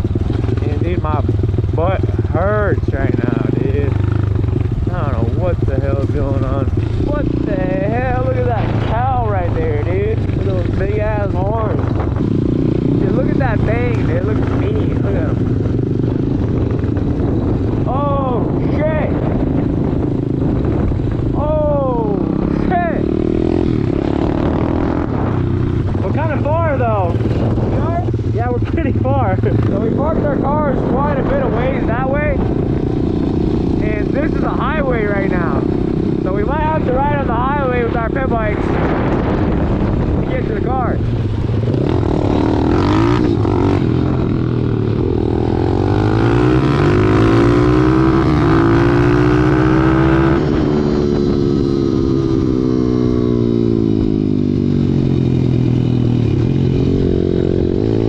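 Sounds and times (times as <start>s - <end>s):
another pit bike riding: 0.0s - 58.0s
pit bike engine revving: 0.0s - 58.0s.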